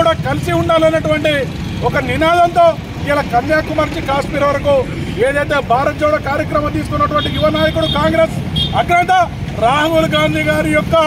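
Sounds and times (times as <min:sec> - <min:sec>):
man speaking forcefully: 0:00.0 - 0:11.0.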